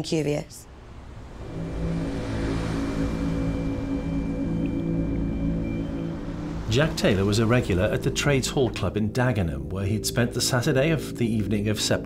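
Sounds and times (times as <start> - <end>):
dark drone music: 0.6 - 12.0.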